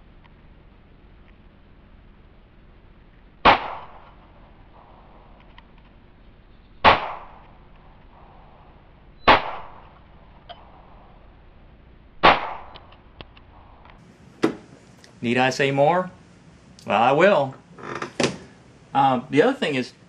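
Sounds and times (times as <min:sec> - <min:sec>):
pistol shots with echo: 0:03.4 - 0:05.4, 0:06.8 - 0:07.6, 0:09.2 - 0:10.8, 0:12.2 - 0:12.9.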